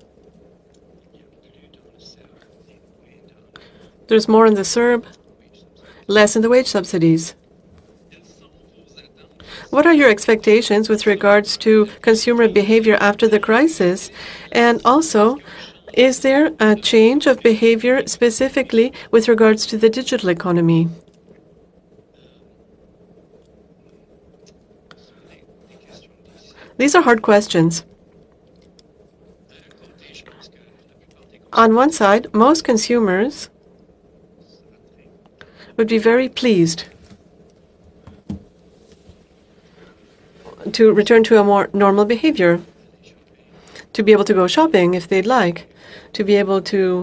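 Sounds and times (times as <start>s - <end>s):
faint low hum: 0.0s - 47.0s
faint whispered sounds: 0.0s - 47.0s
faint background speech: 1.0s - 7.4s, 8.0s - 21.0s, 22.0s - 22.6s, 23.9s - 27.9s, 29.3s - 33.6s, 34.3s - 37.2s.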